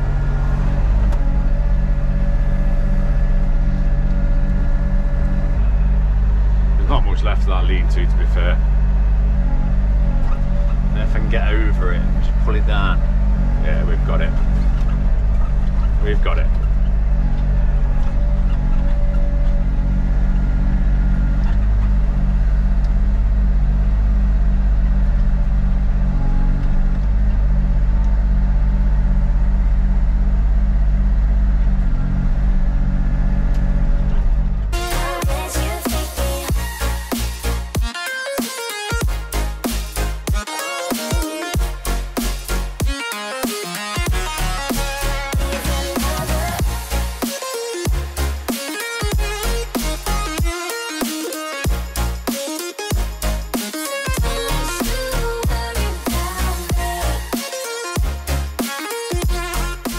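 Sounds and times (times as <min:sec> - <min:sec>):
excavator diesel engine humming: 0:00.0 - 0:59.9.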